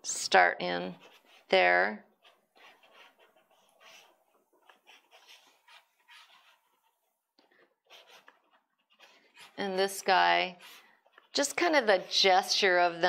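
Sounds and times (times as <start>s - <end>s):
pastel scratching on paper: 0.8s - 7.0s, 7.8s - 13.0s.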